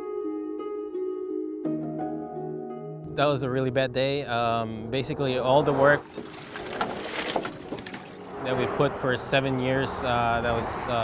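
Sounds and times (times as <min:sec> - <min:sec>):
water lapping and splashing: 0:06.0 - 0:08.5.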